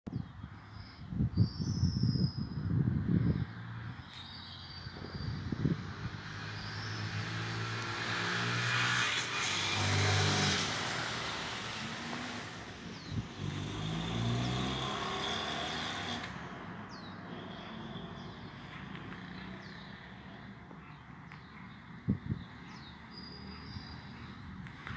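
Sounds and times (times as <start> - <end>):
car driving past: 3.6 - 20.5.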